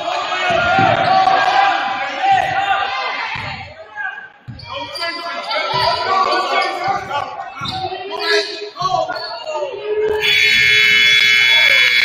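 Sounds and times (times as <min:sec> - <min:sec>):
scoreboard horn blaring: 0:10.2 - 0:12.0.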